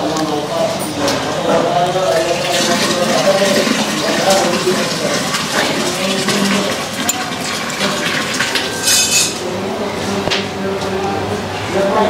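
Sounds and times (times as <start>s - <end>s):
thick liquid pouring from pot: 2.0s - 8.8s.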